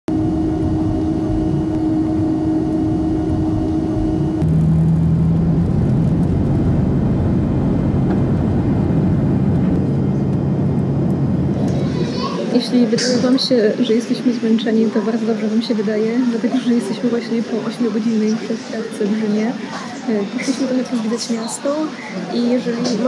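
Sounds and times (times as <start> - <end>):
airliner cabin engine hum: 0.0 - 23.0.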